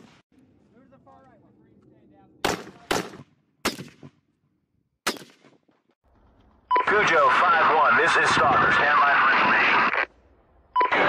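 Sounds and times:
rifle shots echoing: 2.4 - 4.2, 5.0 - 5.5.

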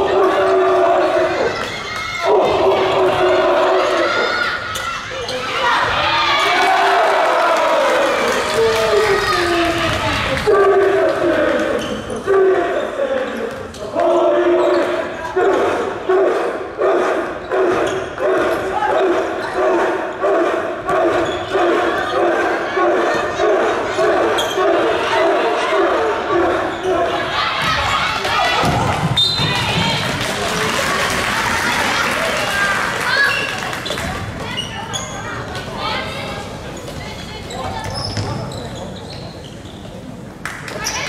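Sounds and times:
crowd chanting in unison: 12.3 - 29.0.

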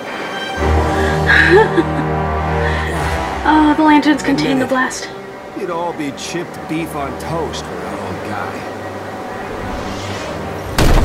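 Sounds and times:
explosion boom: 10.7 - 11.0.

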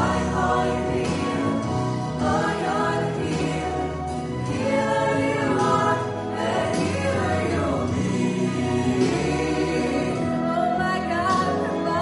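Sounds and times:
instrumental accompaniment: 0.0 - 12.0
mixed choir singing worship song: 0.0 - 12.0
steady bass notes: 0.0 - 12.0.

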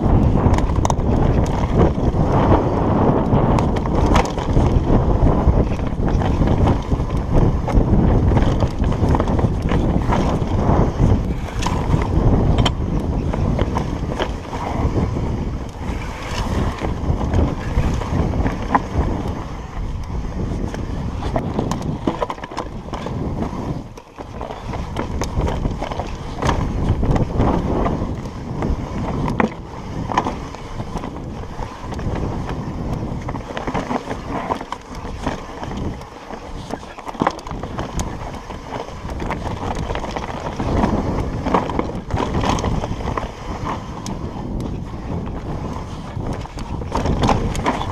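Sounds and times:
bike knocks and rattles: 0.0 - 19.4, 20.4 - 36.0, 36.6 - 47.9
wind on microphone: 0.0 - 47.9.

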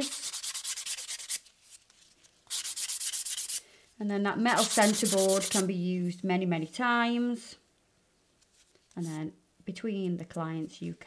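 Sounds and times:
nail file rasping: 0.0 - 1.4, 2.5 - 3.6, 4.6 - 5.7.

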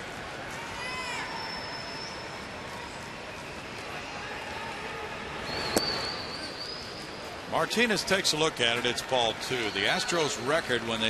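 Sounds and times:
high whistle-like tone: 1.2 - 2.5.

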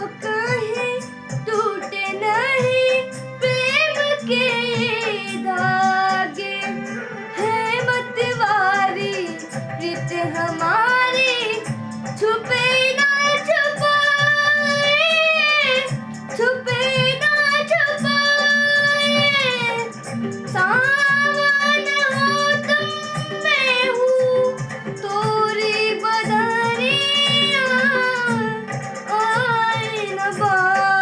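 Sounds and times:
boy singing semi-classical song: 0.0 - 31.0.

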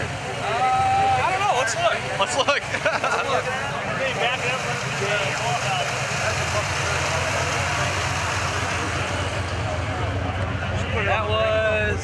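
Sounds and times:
car engine idling: 0.0 - 12.0
faint crowd chatter: 0.0 - 12.0.

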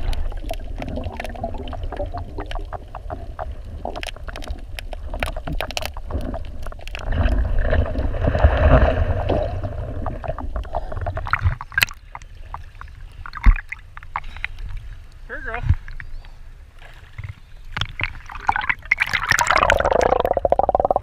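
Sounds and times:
small crackling clicks: 0.0 - 7.4
water splashing and sloshing: 0.0 - 21.0.

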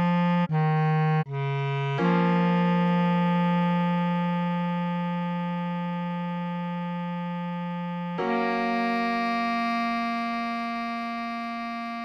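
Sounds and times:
bass clarinet long note: 0.0 - 12.0.

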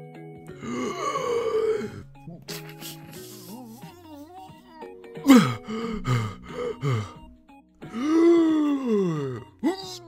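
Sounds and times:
soft background music: 0.0 - 10.0
long drawn-out gasp: 0.5 - 2.1, 5.3 - 7.3, 7.9 - 9.4.

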